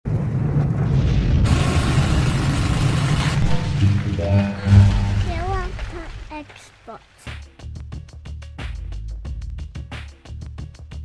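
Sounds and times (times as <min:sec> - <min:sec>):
deep boom and rumble: 0:00.1 - 0:06.3
loud noisy rush: 0:01.4 - 0:06.5
musical tones: 0:03.4 - 0:06.3.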